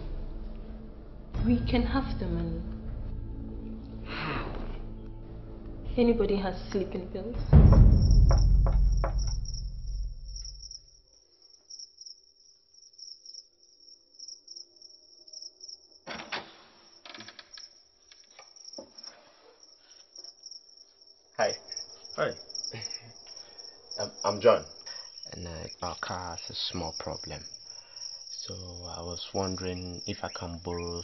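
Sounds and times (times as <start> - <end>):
crickets chirping: 2.7 - 31.0
clicks and thuds: 7.6 - 10.5.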